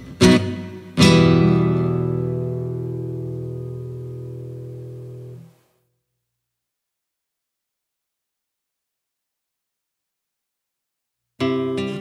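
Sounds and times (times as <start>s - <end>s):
acoustic guitar chord ringing: 0.2s - 5.6s.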